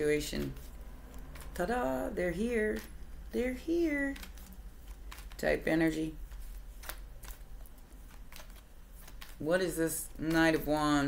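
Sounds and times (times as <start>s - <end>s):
cards shuffling and clicking: 0.0s - 11.0s.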